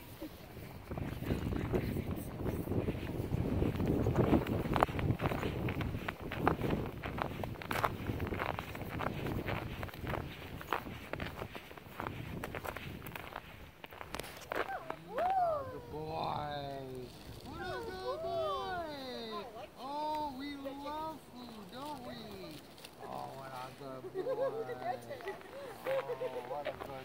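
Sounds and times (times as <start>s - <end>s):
footsteps in snow: 0.0s - 27.0s.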